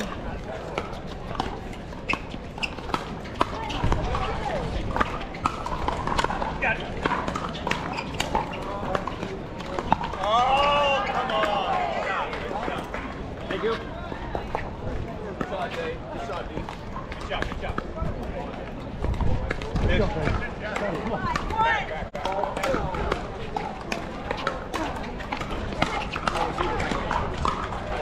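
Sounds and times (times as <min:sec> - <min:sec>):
background chatter: 0:00.0 - 0:28.0.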